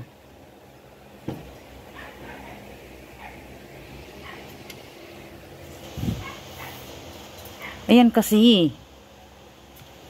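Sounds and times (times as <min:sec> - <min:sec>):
woman's voice: 0:07.9 - 0:08.8.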